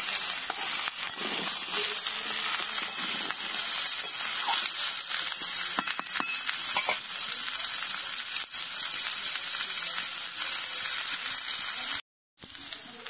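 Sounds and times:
metal spatula scraping wok: 0.0 - 7.1
vegetables sizzling in oil: 0.0 - 13.0.

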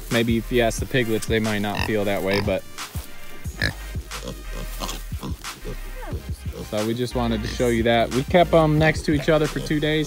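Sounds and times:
background music with bass: 0.0 - 10.0
pigs grunting: 0.8 - 10.0.

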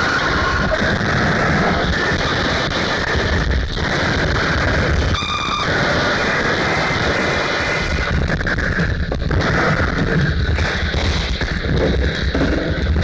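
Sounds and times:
distorted industrial noise: 0.0 - 13.0.

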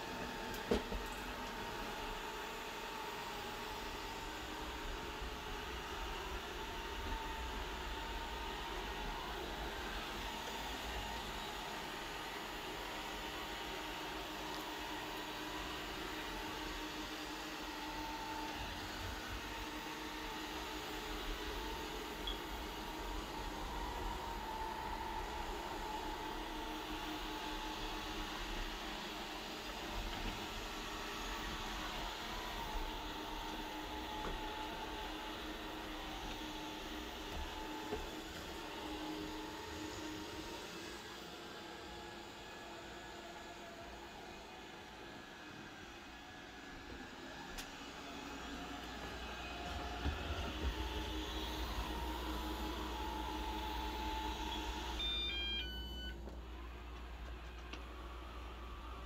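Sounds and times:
robot vacuum cleaner humming: 0.0 - 59.0.

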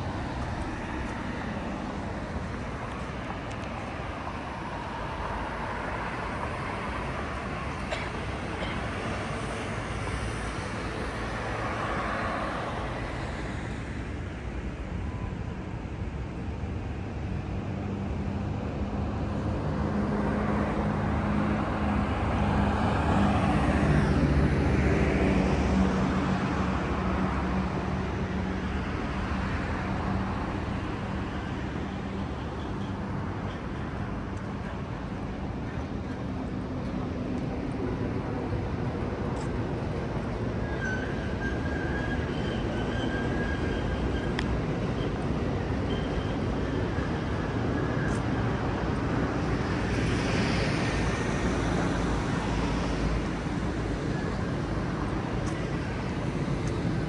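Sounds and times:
vehicles passing: 0.0 - 57.0.

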